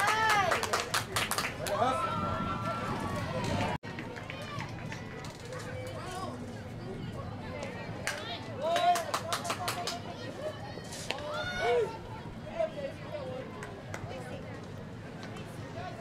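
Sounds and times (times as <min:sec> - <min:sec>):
people clapping: 0:00.0 - 0:02.0, 0:02.6 - 0:06.0, 0:08.0 - 0:10.1
people calling out and chattering: 0:00.0 - 0:16.0.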